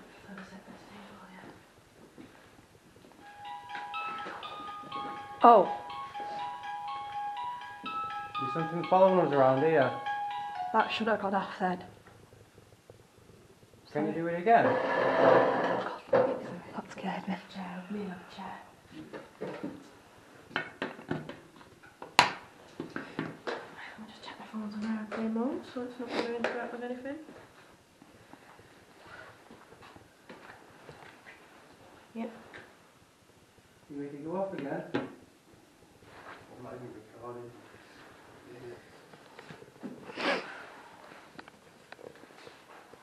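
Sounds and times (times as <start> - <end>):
music box chiming tune: 3.2 - 11.2.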